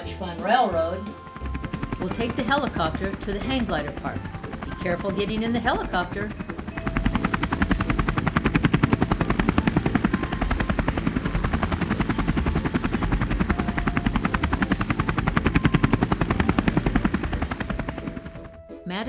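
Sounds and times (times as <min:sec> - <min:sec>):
helicopter rotor chopping: 0:01.1 - 0:18.7.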